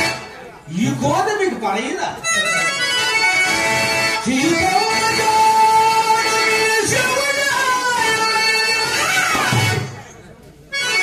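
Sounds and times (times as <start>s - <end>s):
harmonium playing held notes: 0.0s - 1.0s, 2.1s - 11.0s.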